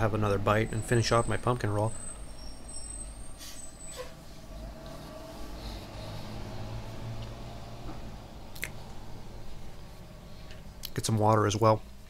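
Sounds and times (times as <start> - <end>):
heavy vehicle rumbling past: 0.0 - 10.8.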